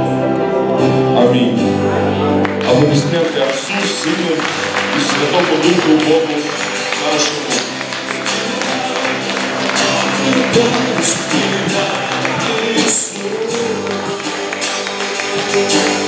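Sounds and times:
worship band playing: 0.0s - 16.0s
hands clapping: 2.4s - 16.0s
man singing into a microphone: 5.0s - 16.0s.

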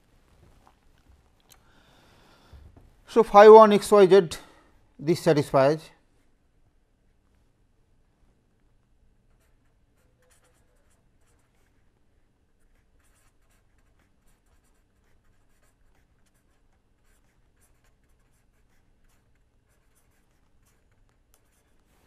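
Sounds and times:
pen scratching on paper: 9.3s - 11.9s, 12.5s - 22.0s.

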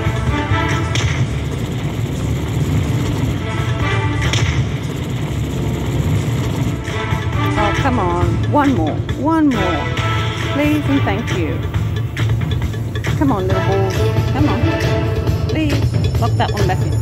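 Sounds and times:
reels stopping thuds: 0.0s - 7.6s
slot machine bonus music: 0.0s - 17.0s
steady low rumble: 0.0s - 17.0s.

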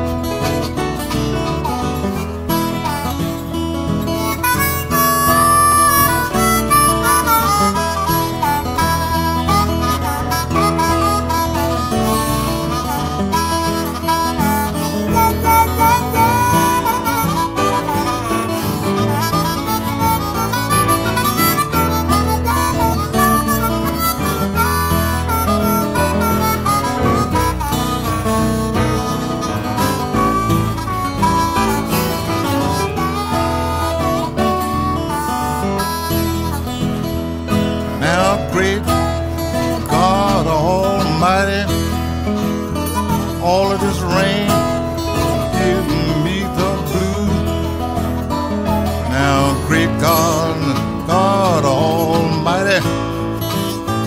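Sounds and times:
blues harmonica solo: 0.0s - 54.0s
fingerpicked acoustic guitar: 0.0s - 54.0s.

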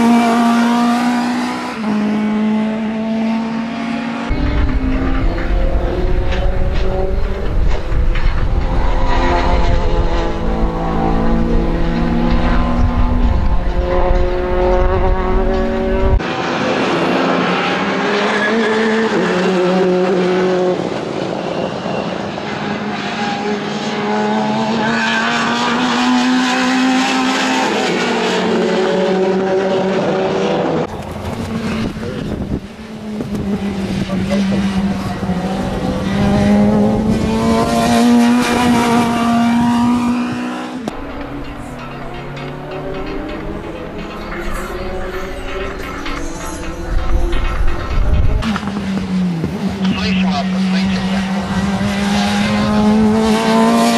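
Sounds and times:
race car engine revving: 0.0s - 53.9s.

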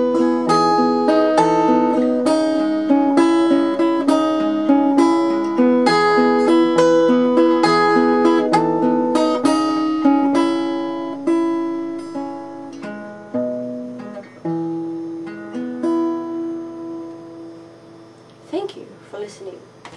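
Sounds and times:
acoustic guitar picking: 0.0s - 18.2s.

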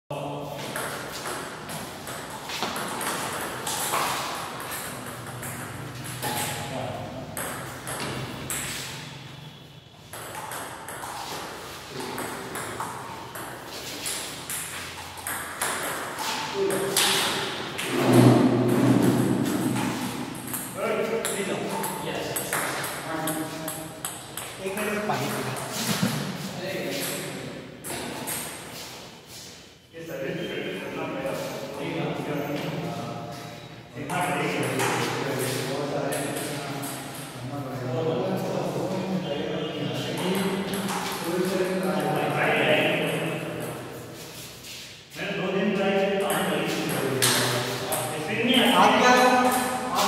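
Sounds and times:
voices: 34.0s - 43.9s, 45.2s - 50.0s.

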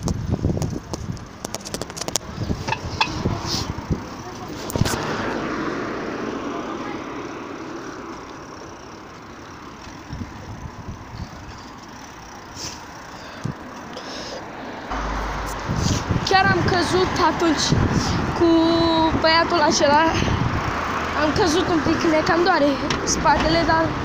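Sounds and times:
vehicle rushing past: 2.4s - 8.3s, 14.6s - 18.4s
low rumble: 14.9s - 17.2s.

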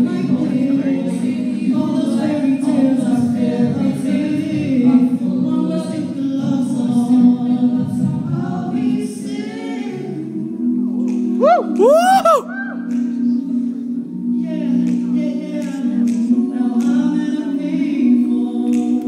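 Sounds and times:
a cappella group singing harmony: 0.0s - 19.0s.

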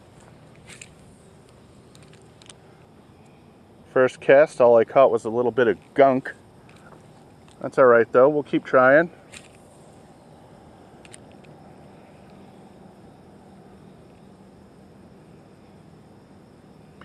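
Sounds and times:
faint steady hiss: 0.0s - 17.0s
low hum: 0.0s - 17.0s
faint ticks: 6.6s - 7.7s, 12.2s - 12.4s.

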